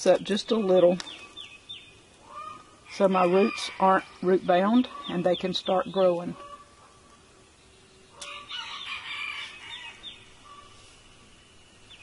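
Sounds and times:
birds calling: 0.0 - 12.0.

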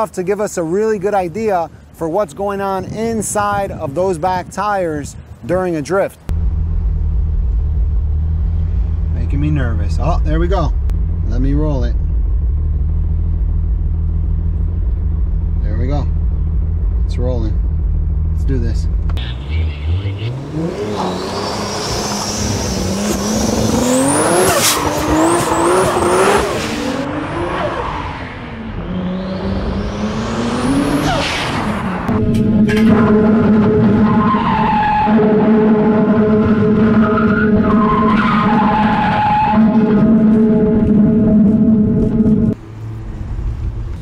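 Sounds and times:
car engine idling: 6.3 - 20.5
high turbo whine: 6.3 - 44.0
car engine revving hard: 19.4 - 42.6
tires squealing on pavement: 19.8 - 28.6, 29.2 - 42.6.

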